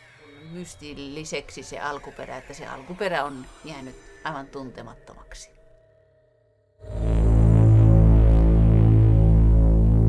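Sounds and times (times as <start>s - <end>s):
deep throbbing soundtrack drone: 0.0s - 10.0s.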